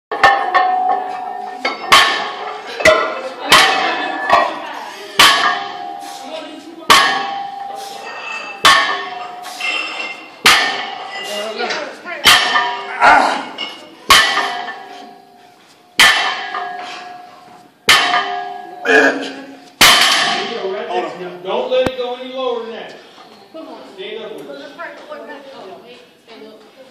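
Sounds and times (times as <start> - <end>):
barbell clanging on floor: 0.1 - 4.6, 6.9 - 15.4, 16.0 - 20.7
weight plates ringing: 0.1 - 21.0.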